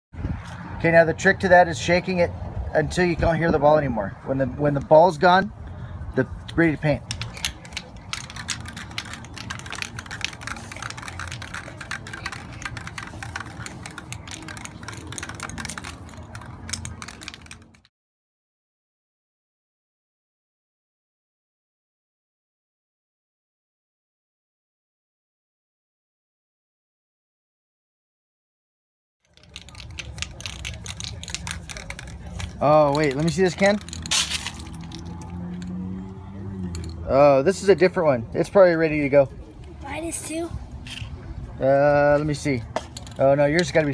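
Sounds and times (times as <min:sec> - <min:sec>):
spray can balls rattling: 0:06.9 - 0:17.9, 0:29.2 - 0:36.0, 0:36.6 - 0:37.0, 0:40.8 - 0:41.1, 0:42.2 - 0:43.9.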